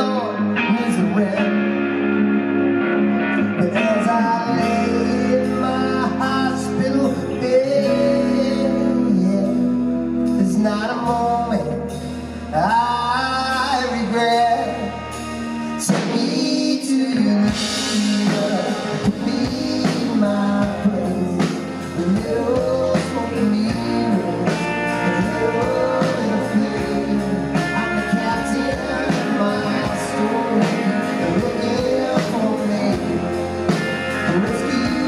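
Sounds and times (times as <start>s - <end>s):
man singing: 0.0s - 2.2s, 3.4s - 35.0s
electric guitar: 0.0s - 35.0s
rock band playing slow song: 0.0s - 35.0s.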